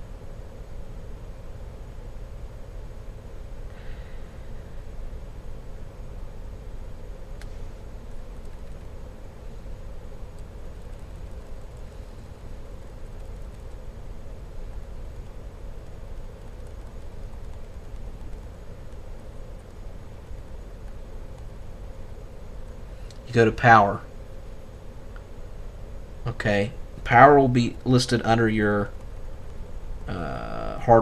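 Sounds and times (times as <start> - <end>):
low room hum: 0.0 - 31.0.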